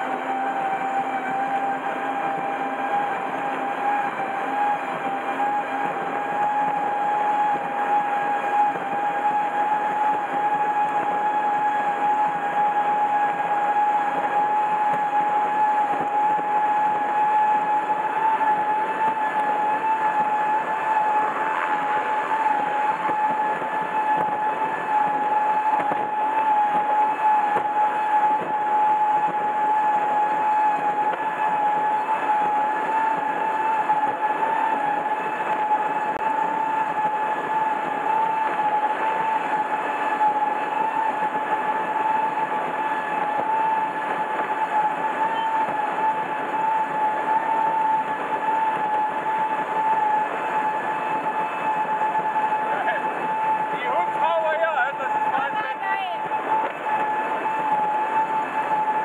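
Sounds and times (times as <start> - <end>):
boat engine whine: 0.0 - 59.0
rush of wind and water: 0.0 - 59.0.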